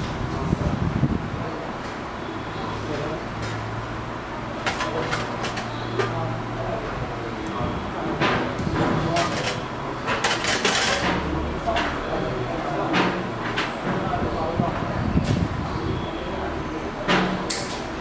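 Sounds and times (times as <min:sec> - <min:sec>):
murmur of voices: 0:00.0 - 0:18.0.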